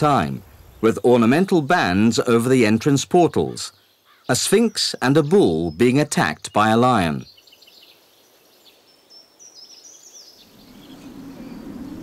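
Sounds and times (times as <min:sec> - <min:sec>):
low noise: 0:00.0 - 0:07.3, 0:10.4 - 0:12.0
faint outdoor ambience: 0:00.0 - 0:12.0
small bird chirping: 0:03.7 - 0:12.0.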